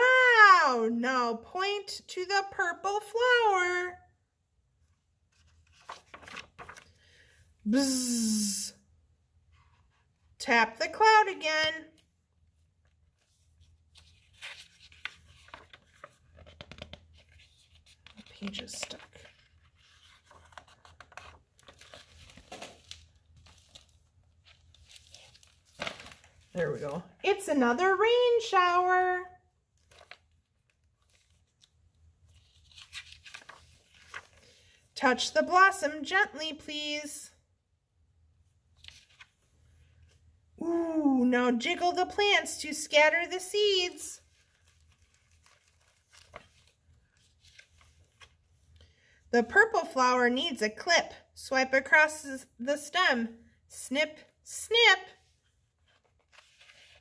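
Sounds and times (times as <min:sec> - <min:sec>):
page turning: 0:05.2 - 0:07.1, 0:12.8 - 0:27.1, 0:29.7 - 0:34.8, 0:38.7 - 0:40.2, 0:43.9 - 0:48.8, 0:55.4 - 0:57.0
crackly paper rustling: 0:05.2 - 0:07.2, 0:12.6 - 0:27.6, 0:29.7 - 0:34.8, 0:38.7 - 0:40.3, 0:43.4 - 0:48.8, 0:55.2 - 0:57.0.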